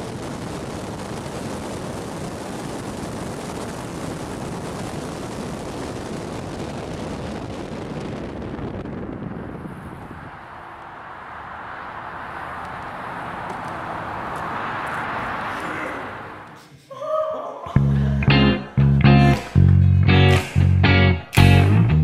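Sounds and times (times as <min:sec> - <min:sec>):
car road and wind noise: 0:00.0 - 0:16.6.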